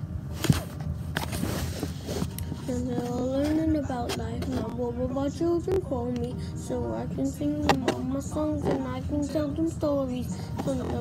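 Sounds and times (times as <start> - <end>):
rubbing and scraping on phone: 0.3 - 4.7.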